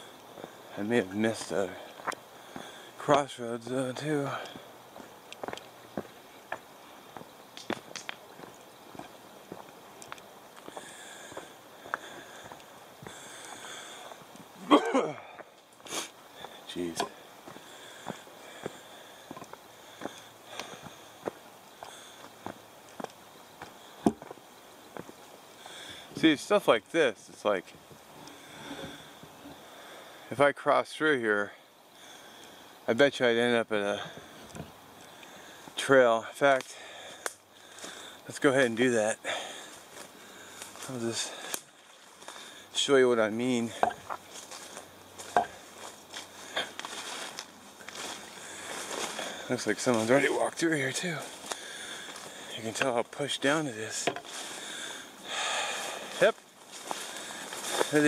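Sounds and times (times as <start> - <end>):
plants crackling underfoot: 0.0 - 26.7, 39.3 - 58.0
footsteps on dirt trail: 0.0 - 30.1, 33.9 - 58.0.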